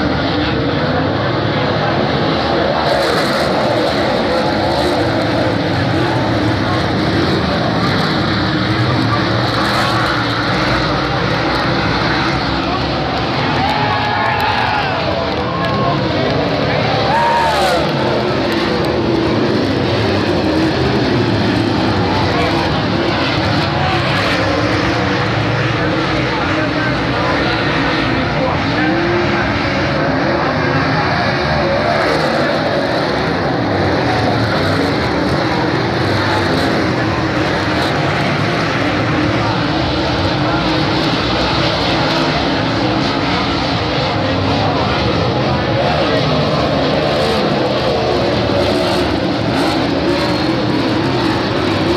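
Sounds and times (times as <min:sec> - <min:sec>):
race car engines revving: 0:00.0 - 0:51.9.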